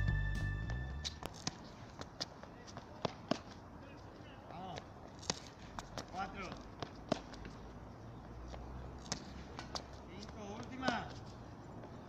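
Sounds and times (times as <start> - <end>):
light footsteps: 0.6 - 12.0.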